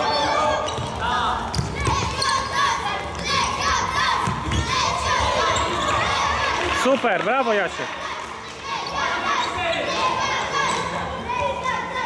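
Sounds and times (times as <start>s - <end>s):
shoes squeaking on court: 0.0s - 3.5s, 4.2s - 6.3s
voices shouting: 0.0s - 12.0s.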